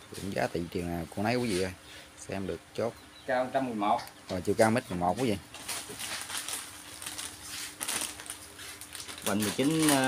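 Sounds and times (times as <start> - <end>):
plastic wrap crinkling: 5.1 - 10.0.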